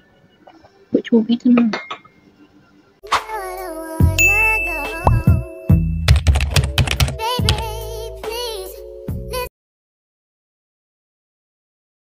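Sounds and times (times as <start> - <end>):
outro music: 3.0 - 8.4
bell-like ding: 4.2 - 6.1.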